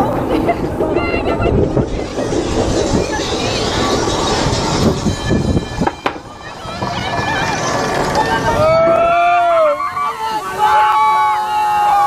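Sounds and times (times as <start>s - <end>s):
wind rushing over microphone: 0.0s - 11.4s
riders' voices: 0.0s - 12.0s
roller coaster rumbling on track: 0.0s - 12.0s.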